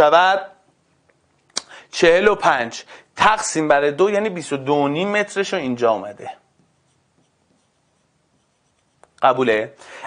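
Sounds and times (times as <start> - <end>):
stylus writing on touchscreen: 6.6 - 9.2.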